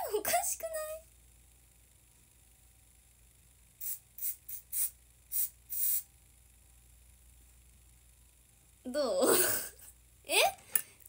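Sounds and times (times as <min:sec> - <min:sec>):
aerosol hairspray hissing bursts: 0:03.8 - 0:06.1.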